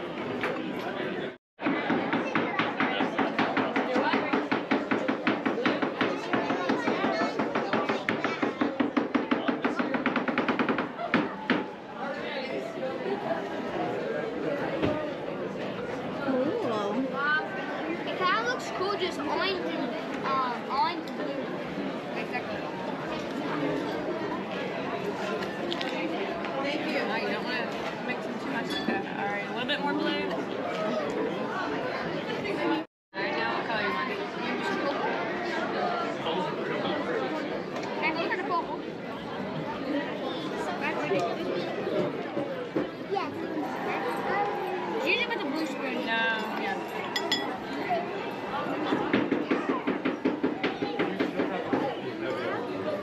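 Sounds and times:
background chatter: 0.0s - 53.0s
children talking and calling out: 5.0s - 9.0s, 16.2s - 21.4s, 38.0s - 51.9s.

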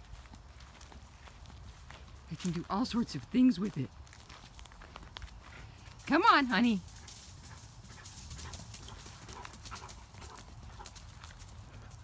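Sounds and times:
footfalls on dry leaves: 0.0s - 8.8s.

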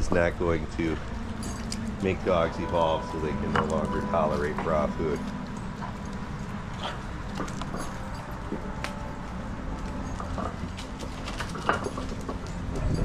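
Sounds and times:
steady low rumble: 0.0s - 13.0s
dogs chewing fish bones: 5.0s - 13.0s.

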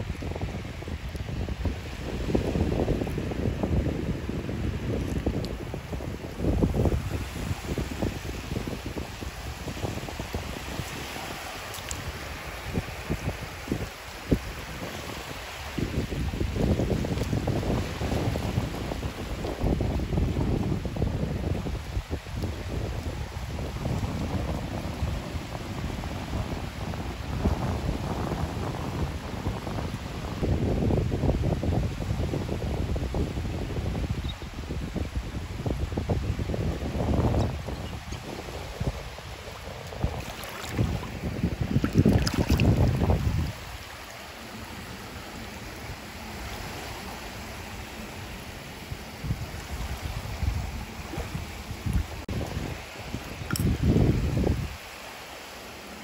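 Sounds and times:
wind buffeting microphone: 0.0s - 54.9s
small waves washing on beach: 0.0s - 56.0s.

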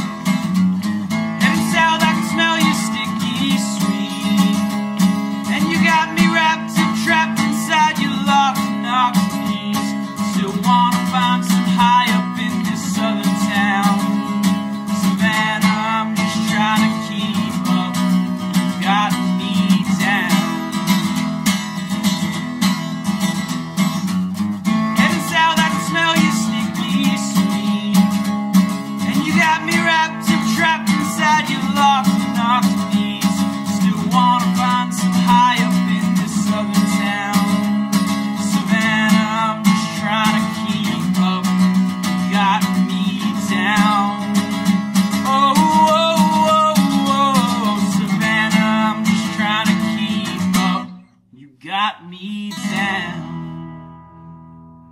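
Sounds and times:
acoustic guitar strumming: 0.0s - 54.9s
man singing: 1.1s - 21.3s, 23.8s - 53.8s.

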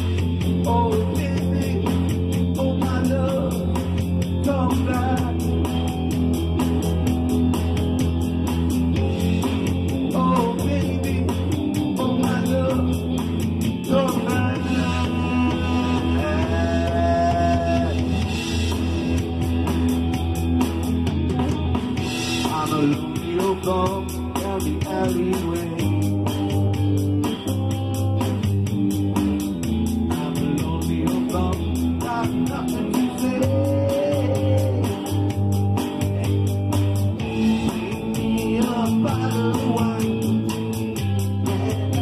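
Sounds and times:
bass guitar: 0.0s - 42.0s
guitars: 0.0s - 42.0s.

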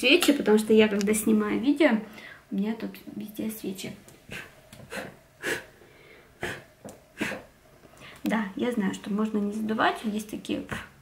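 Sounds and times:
person puffing breath: 4.3s - 8.2s.

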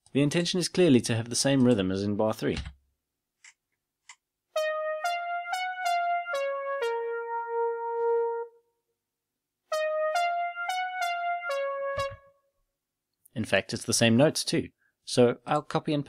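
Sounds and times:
synthesised melody playback: 4.6s - 8.7s, 9.7s - 12.5s.

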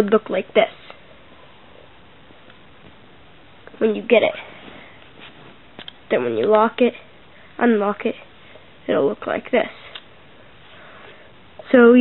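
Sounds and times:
faint recording hiss: 0.0s - 12.0s.

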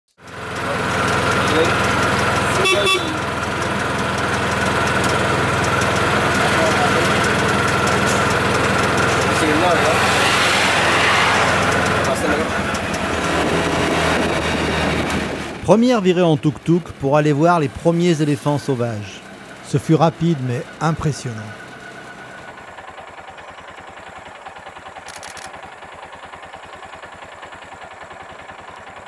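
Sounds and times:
auto-rickshaw engine running: 0.1s - 29.0s
horn toot: 2.4s - 3.4s.

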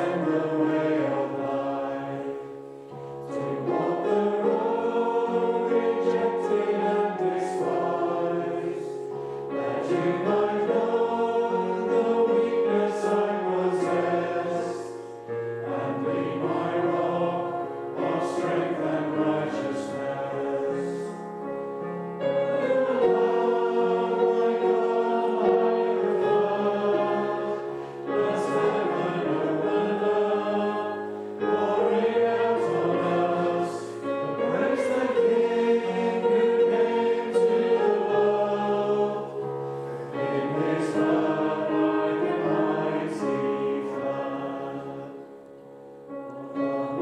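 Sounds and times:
congregation singing: 0.0s - 47.0s.

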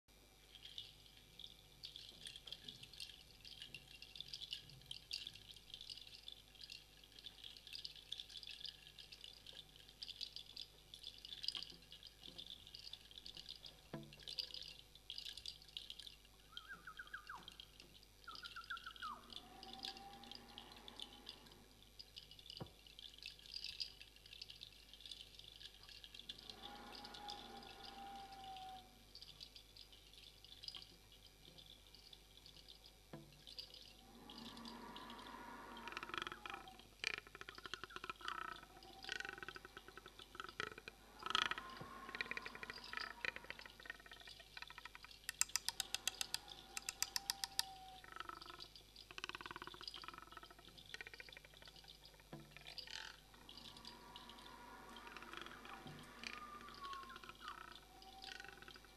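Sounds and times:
light percussion clicks and tinkles: 0.4s - 58.9s
viola high sliding tones: 26.1s - 29.0s, 33.9s - 37.0s, 38.1s - 43.9s, 52.6s - 58.9s.

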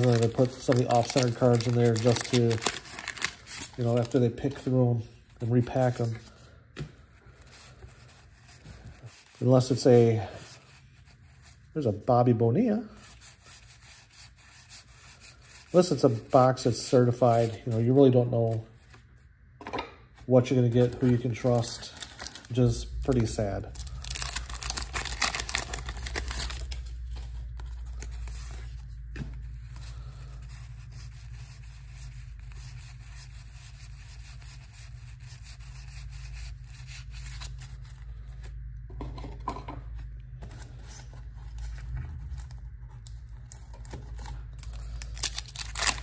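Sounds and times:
cardboard cards rustling: 0.0s - 6.4s, 20.7s - 46.0s
wax-paper wrapper crinkling: 0.0s - 6.4s, 7.1s - 19.1s, 20.4s - 38.8s, 39.9s - 46.0s
steady low hum: 0.0s - 46.0s.

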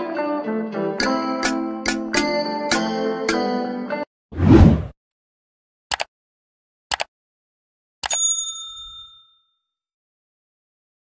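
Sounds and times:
bell ding: 8.1s - 9.7s.

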